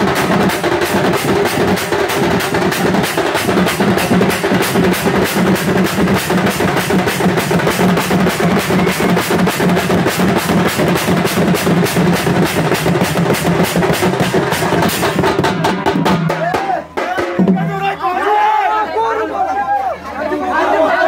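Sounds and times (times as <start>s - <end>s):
cymbals: 0.0s - 17.3s
hand-beaten drums: 0.0s - 18.0s.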